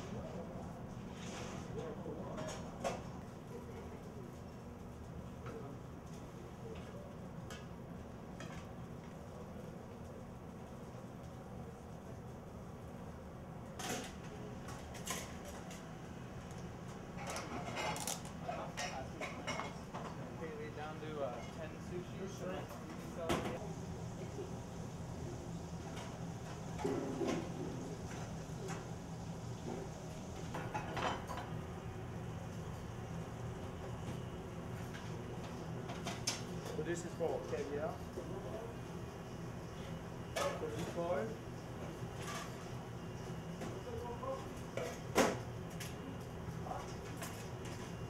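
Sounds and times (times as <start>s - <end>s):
kitchen low hum: 0.0s - 48.0s.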